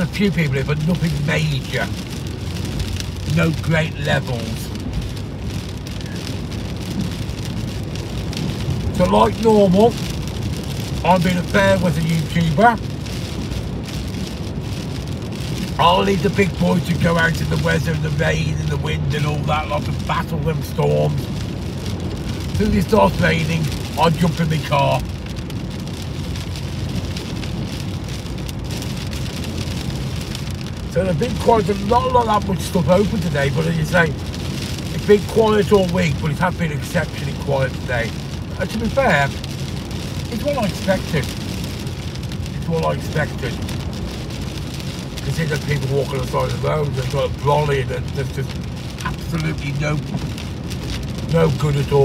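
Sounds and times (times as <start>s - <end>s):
car road rumble: 0.0s - 52.0s
rain on car roof: 0.0s - 52.0s.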